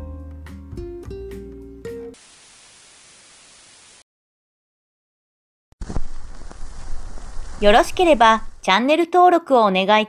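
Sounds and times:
tv static hiss: 2.2s - 4.0s, 5.8s - 8.7s.

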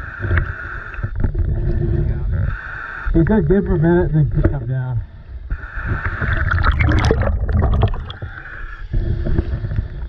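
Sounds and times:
water sloshing and splashing: 6.0s - 8.4s.

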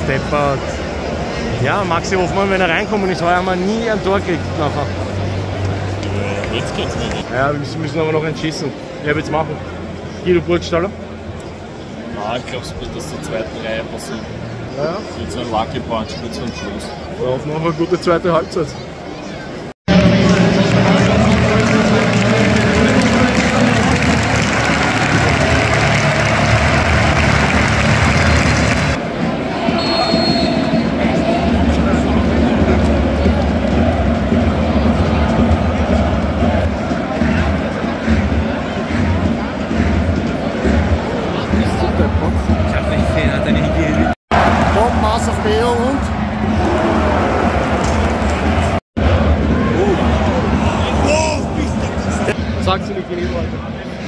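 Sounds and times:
stadium crowd noise: 0.0s - 54.0s.

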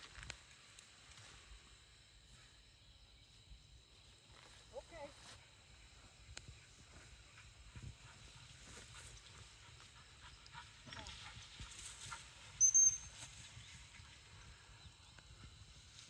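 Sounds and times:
footsteps through tall grass: 4.1s - 9.9s
wind rumble on microphone: 5.8s - 16.0s.

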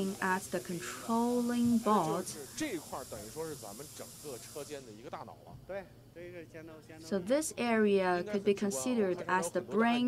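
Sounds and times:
steady high hiss: 0.0s - 10.0s.

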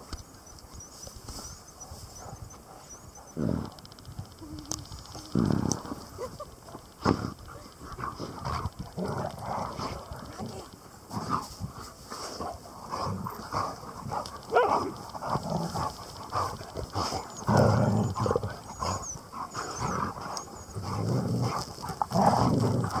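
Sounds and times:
dogs sniffing and snuffling: 0.0s - 23.0s.

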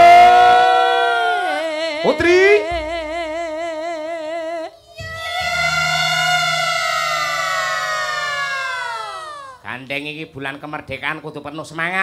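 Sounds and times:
woman singing a sliding high note: 1.4s - 9.6s.

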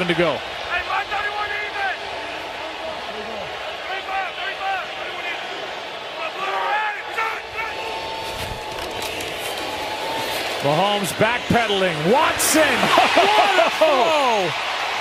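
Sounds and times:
stadium crowd noise: 0.0s - 15.0s.

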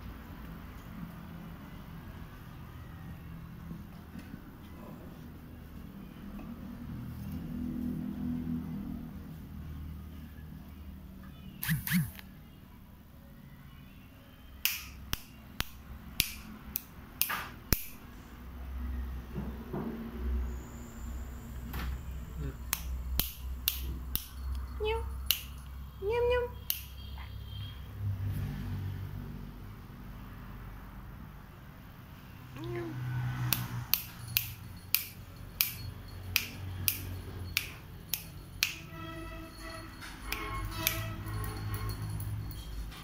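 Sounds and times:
fingers snapping: 14.6s - 18.0s, 22.7s - 24.3s, 25.3s - 25.6s, 26.6s - 26.9s.

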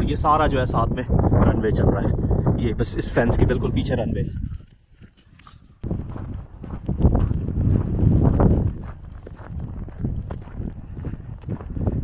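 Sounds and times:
footsteps on packed snow: 4.4s - 12.0s.

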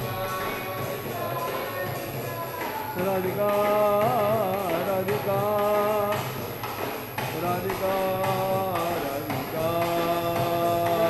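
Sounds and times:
devotional singing: 0.0s - 11.0s
sharp percussive strokes: 0.0s - 11.0s.

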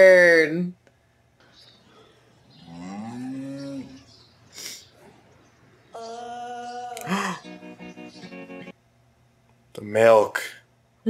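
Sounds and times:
cow mooing: 2.6s - 4.1s.

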